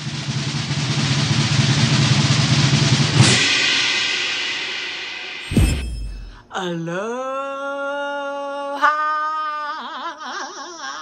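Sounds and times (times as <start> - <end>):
drum roll: 0.2 - 4.7
cymbal crash: 3.1 - 6.5.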